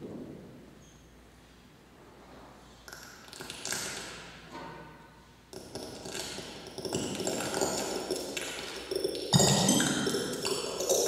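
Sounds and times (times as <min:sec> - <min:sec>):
electronic music pinging tones: 0:09.2 - 0:11.0.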